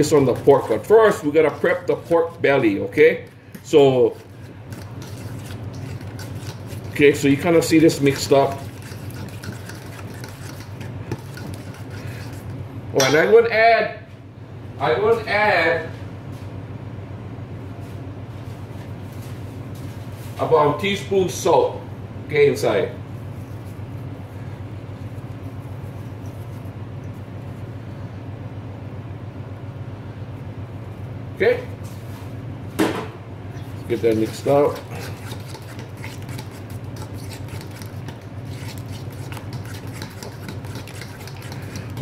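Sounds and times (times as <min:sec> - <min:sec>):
paste stirred in metal bowl: 0:00.0 - 0:12.7, 0:33.6 - 0:42.0
steady low hum: 0:00.0 - 0:42.0.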